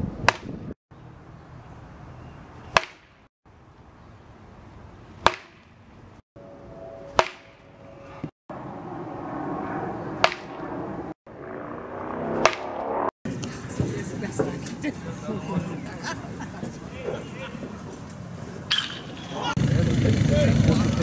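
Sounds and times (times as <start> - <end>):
baseball bat hitting ball: 0.2 - 0.6, 2.7 - 3.2, 5.2 - 5.8, 7.1 - 8.3, 10.2 - 10.6, 12.4 - 12.8.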